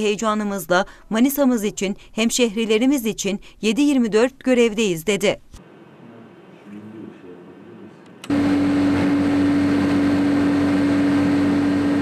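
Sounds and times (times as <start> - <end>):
loud steady machine hum: 8.2 - 12.0.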